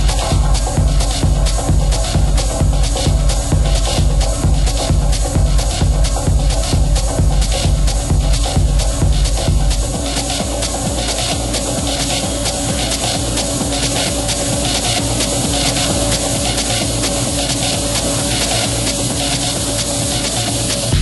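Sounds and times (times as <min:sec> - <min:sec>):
hissy electronic percussion: 0:00.0 - 0:21.0.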